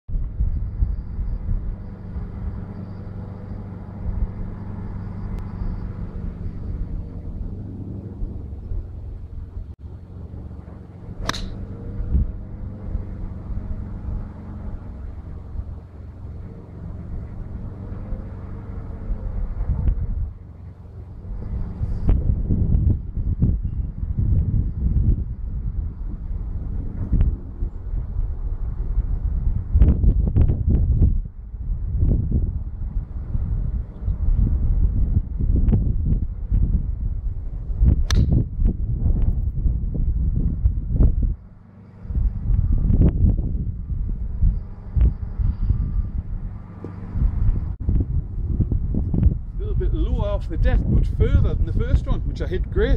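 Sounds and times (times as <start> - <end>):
low outdoor rumble: 0.1 - 52.9
golf club striking ball: 11.1 - 11.9, 38.0 - 38.4.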